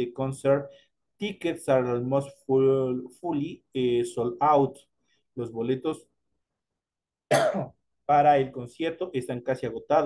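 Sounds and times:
man coughing: 7.3s - 7.8s.

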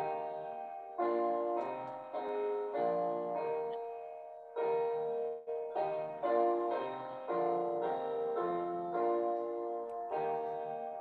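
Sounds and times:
keyboard playing hymn chords: 0.0s - 11.0s.

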